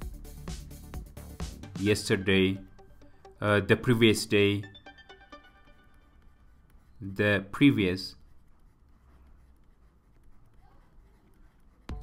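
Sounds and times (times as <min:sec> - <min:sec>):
stylus scratching on drawing tablet: 0:05.8 - 0:12.0.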